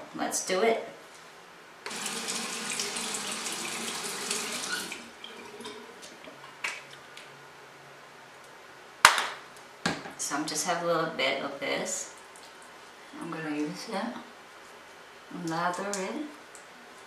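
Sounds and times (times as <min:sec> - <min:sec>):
water running from a tap: 0:01.9 - 0:05.8.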